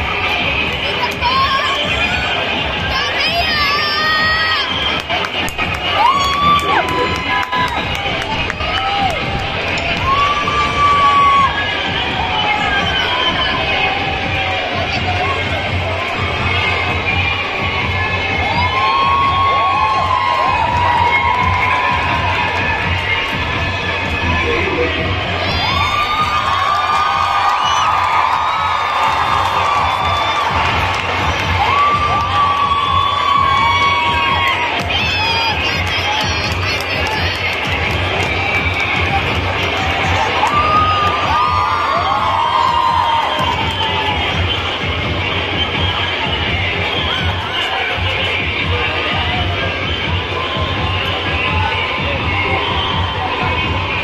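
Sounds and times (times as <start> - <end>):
children cheering and shouting: 0.0 - 37.8, 38.4 - 44.5.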